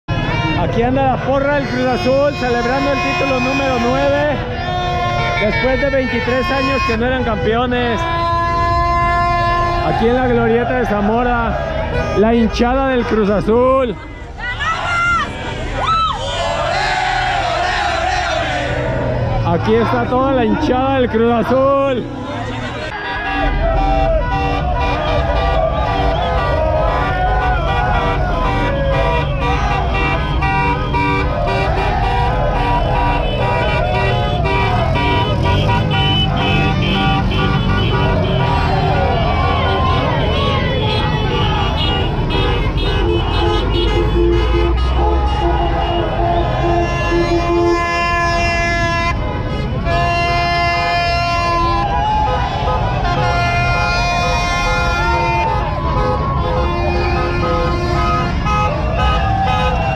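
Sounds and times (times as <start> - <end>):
car horns honking: 0.0 - 59.9
slow-moving traffic: 0.0 - 59.9
crowd shouting: 0.1 - 59.9.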